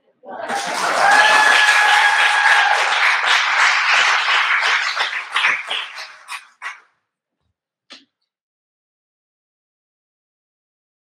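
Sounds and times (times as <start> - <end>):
audience cheering: 0.4 - 6.7
audience applauding: 0.5 - 6.8.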